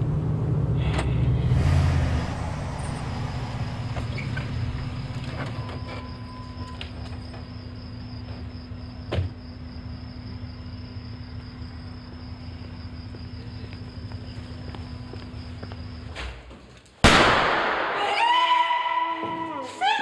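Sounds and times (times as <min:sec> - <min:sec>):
low hum: 0:00.0 - 0:08.0
loud bang: 0:17.0 - 0:18.3.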